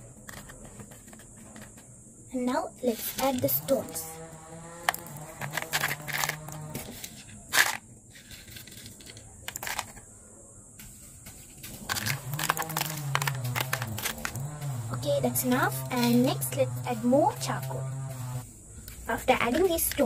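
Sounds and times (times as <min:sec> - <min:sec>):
stones clattering into plastic bottle: 0:04.8 - 0:10.1, 0:11.5 - 0:14.4.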